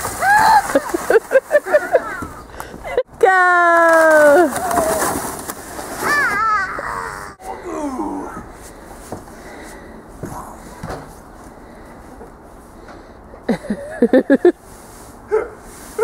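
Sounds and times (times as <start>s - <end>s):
child squealing and giggling: 6.0s - 7.4s.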